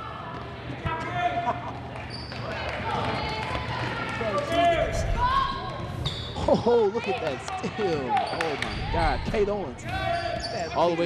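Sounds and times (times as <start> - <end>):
shouts and chatter: 2.4 - 5.9.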